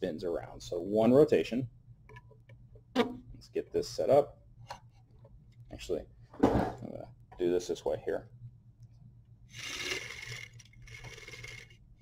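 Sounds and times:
plastic gear train whirring rattle: 0:09.5 - 0:11.8.

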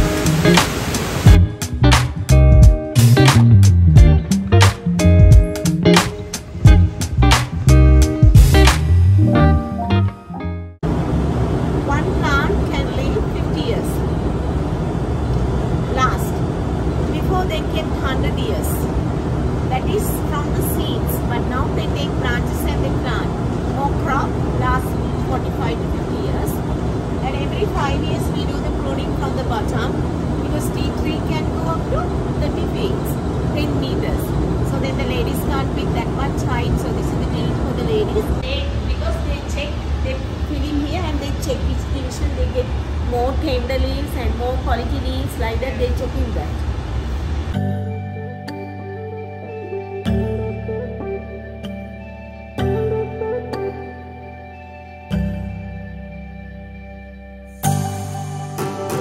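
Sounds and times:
fans humming: 0:00.0 - 0:53.0.

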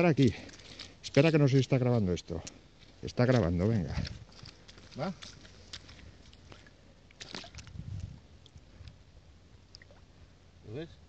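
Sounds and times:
rustling in dry grass: 0:02.6 - 0:08.8.

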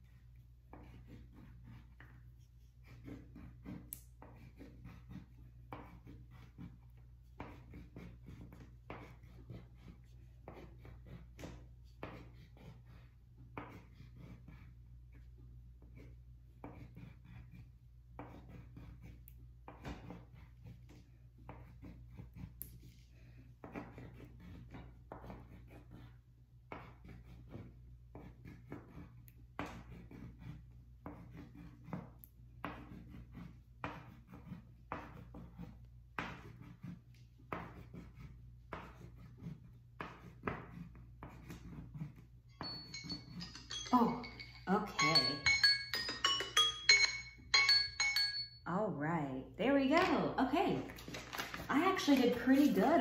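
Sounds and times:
pen drawing on paper: 0:00.0 - 0:43.4
timer alarm chiming: 0:42.5 - 0:48.7.

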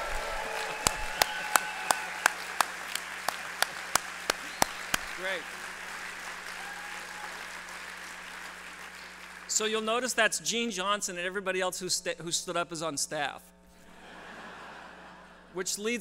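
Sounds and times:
close sharp hand claps: 0:00.0 - 0:09.5
audience applauding: 0:00.0 - 0:09.6.

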